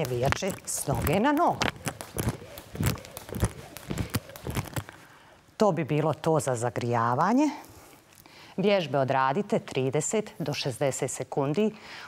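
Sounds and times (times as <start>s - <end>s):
jump rope slapping floor: 0.0s - 5.0s.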